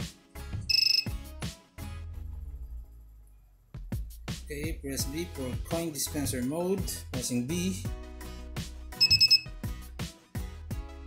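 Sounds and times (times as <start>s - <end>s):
electronic buzzer beep: 0.7s - 1.2s, 9.0s - 9.5s.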